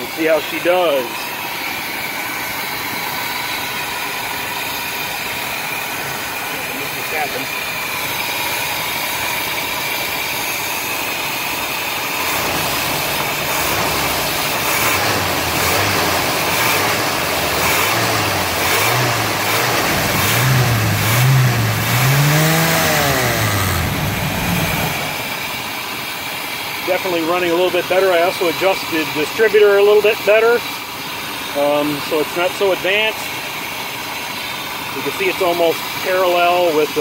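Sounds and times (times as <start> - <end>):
engine idling and revving: 0.0 - 37.0.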